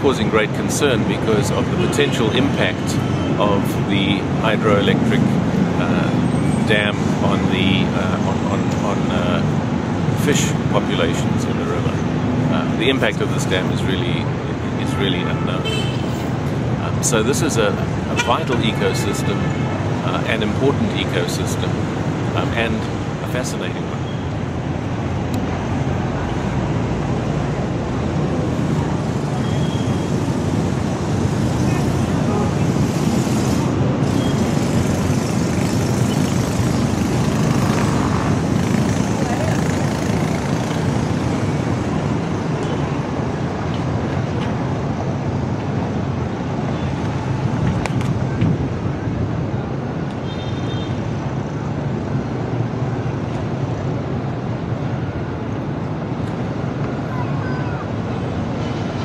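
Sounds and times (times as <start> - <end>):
road traffic rumble: 0.0 - 59.0.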